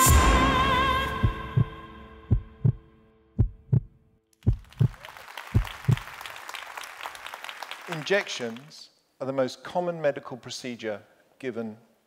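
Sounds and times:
heartbeat thumps: 1.1 - 2.8, 3.4 - 6.1.

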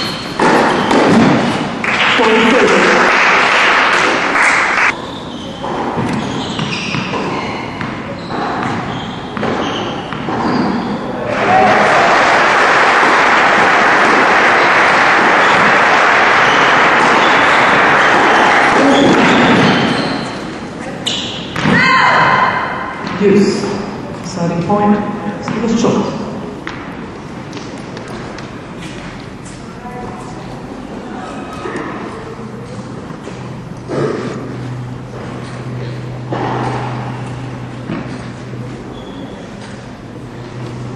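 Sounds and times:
crowd applauding: 1.8 - 4.9, 11.2 - 19.2.

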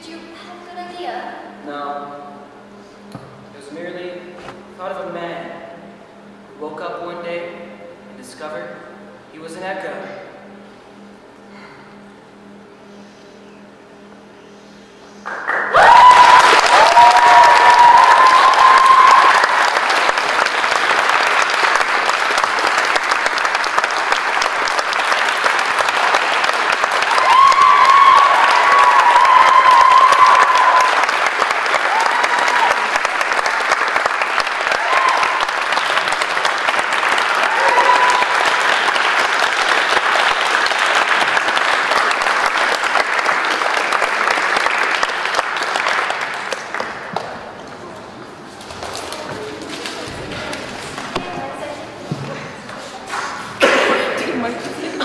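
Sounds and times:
audience applauding: 15.2 - 47.7.

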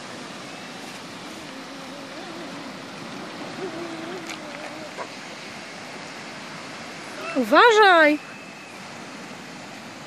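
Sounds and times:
sea surf: 0.0 - 10.0.

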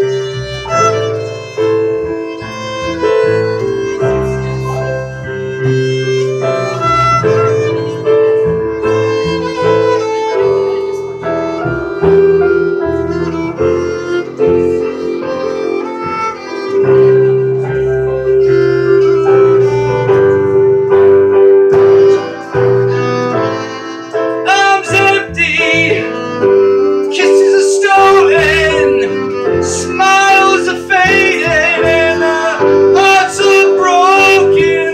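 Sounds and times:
plucked upright bass: 0.0 - 24.0
bowed violin: 0.0 - 34.9
keyboard: 0.0 - 34.9.

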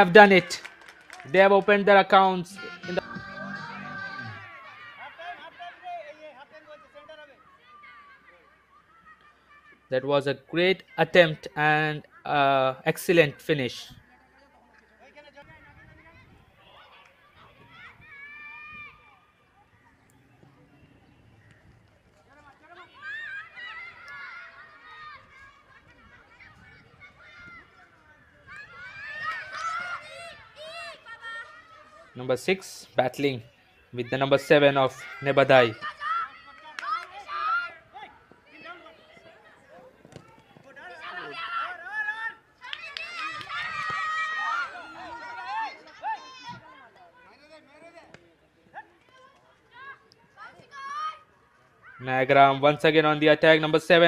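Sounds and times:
girls shouting and calling: 2.4 - 5.8, 28.4 - 32.2, 33.7 - 39.8, 40.8 - 47.0, 49.8 - 52.0.

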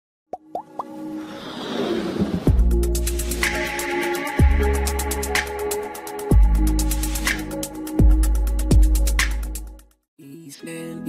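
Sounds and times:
music: 0.4 - 11.0.

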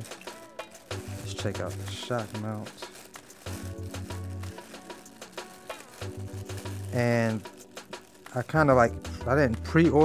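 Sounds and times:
plastic bag crinkling: 0.0 - 8.9
background music with bass line: 0.0 - 10.0.

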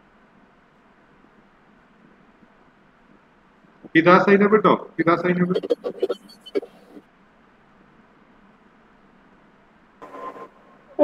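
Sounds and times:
man speaking: 4.0 - 6.2.

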